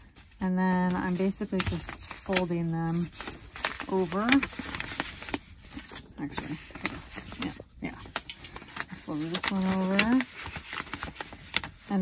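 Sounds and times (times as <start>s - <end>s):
paper being folded and crinkling: 0.0s - 12.0s.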